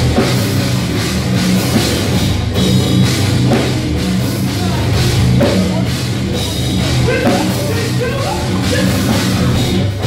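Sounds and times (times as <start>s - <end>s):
bass guitar: 0.0s - 10.0s
distorted electric guitars: 0.0s - 10.0s
drum kit: 0.0s - 10.0s.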